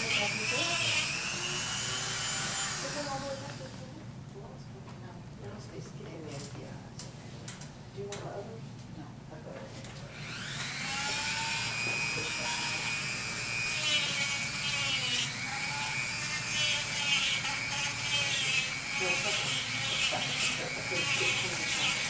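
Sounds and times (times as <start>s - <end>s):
rotary tool grinding wood: 0.0s - 3.3s, 10.2s - 22.0s.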